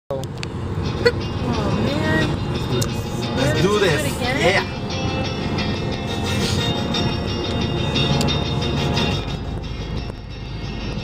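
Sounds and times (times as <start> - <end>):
road noise inside moving car: 0.1 - 11.0
voices: 1.5 - 4.8.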